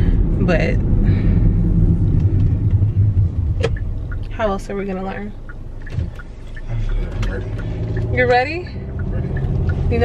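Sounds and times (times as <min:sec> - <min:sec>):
car interior road rumble: 0:00.0 - 0:10.0.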